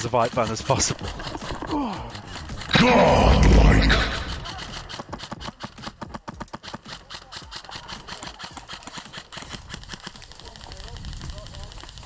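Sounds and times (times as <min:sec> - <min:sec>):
sharp clicks and knocks: 0:00.0 - 0:10.6.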